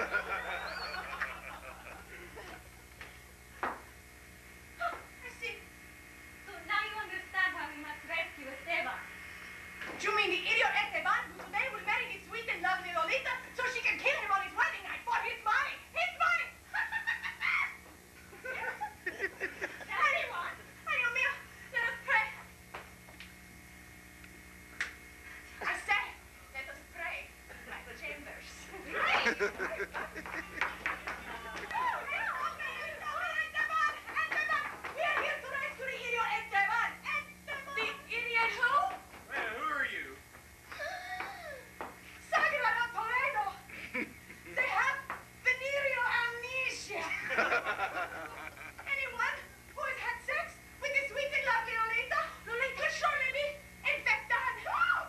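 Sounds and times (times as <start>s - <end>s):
woman wailing: 40.8s - 41.6s.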